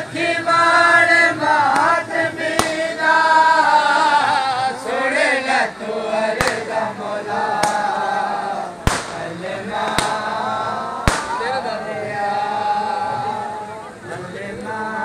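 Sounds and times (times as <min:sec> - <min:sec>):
crowd of men chanting: 0:00.0 - 0:15.0
sharp bangs: 0:02.5 - 0:02.9, 0:06.4 - 0:06.9, 0:08.8 - 0:10.4, 0:11.0 - 0:11.6.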